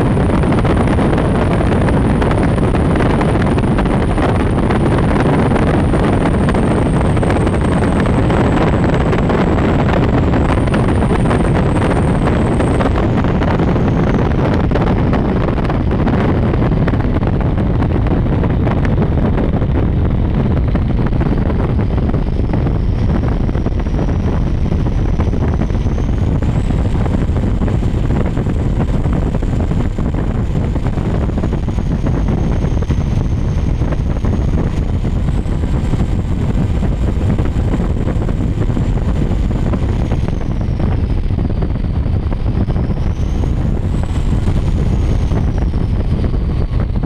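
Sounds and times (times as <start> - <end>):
thin high whine: 0.0 - 15.8, 20.6 - 47.0
boat engines running at speed: 0.0 - 47.0
wind buffeting microphone: 0.0 - 47.0.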